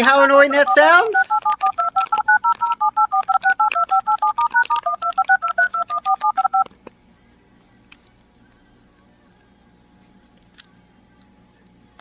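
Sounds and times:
phone dial-pad touch-tones: 0.0 - 6.7.

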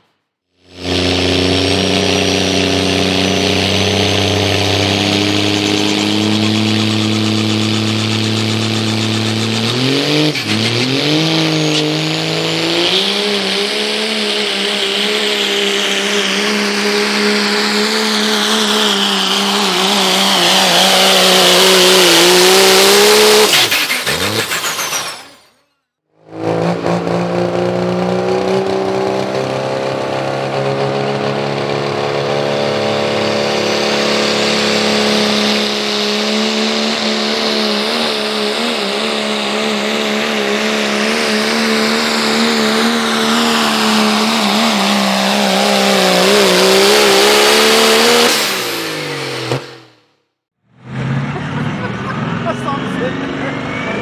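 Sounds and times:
high engine whine: 0.0 - 54.0
diesel pickup engine revving: 0.6 - 25.5, 26.2 - 50.1.

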